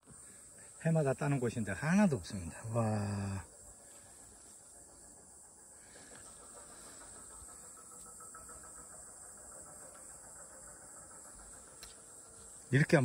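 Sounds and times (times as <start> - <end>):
insects chirring: 0.0 - 13.0.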